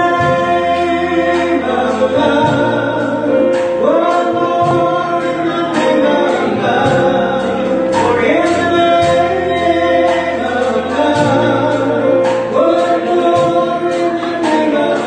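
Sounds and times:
bass guitar: 0.0s - 15.0s
electric guitar: 0.0s - 15.0s
person singing into microphone: 0.0s - 15.0s
singing voices: 0.0s - 15.0s.

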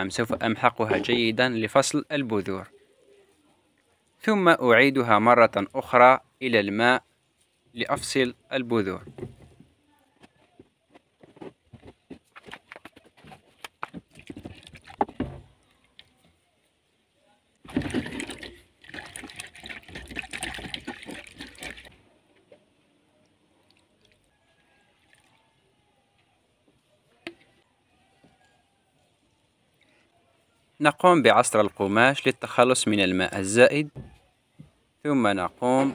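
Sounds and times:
water sloshing in plastic cup: 12.4s - 16.4s, 17.5s - 22.0s
faint water drips: 23.1s - 26.3s.

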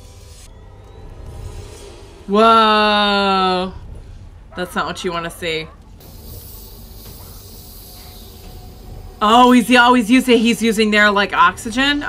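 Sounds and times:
low hum: 0.0s - 12.0s
steady hiss: 6.0s - 10.3s.

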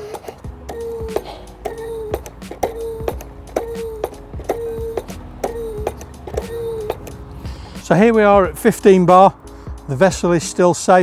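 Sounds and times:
hand pump lever click: 0.0s - 7.2s
hand pump squeak: 0.0s - 7.2s.

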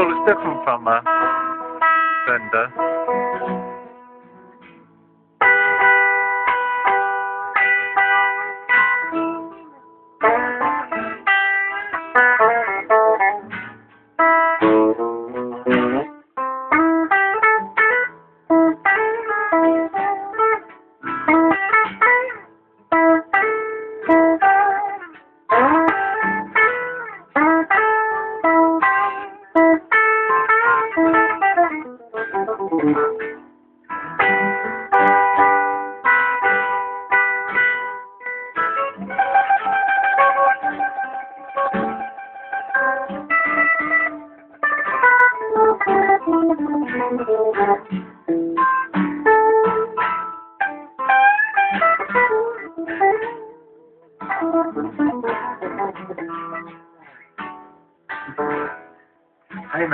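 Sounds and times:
guitar plucked notes and chords: 0.0s - 59.9s.

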